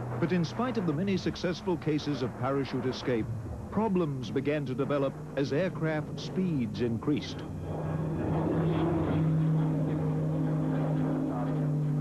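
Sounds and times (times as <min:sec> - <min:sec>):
propeller plane engine droning: 0:00.0 - 0:12.0.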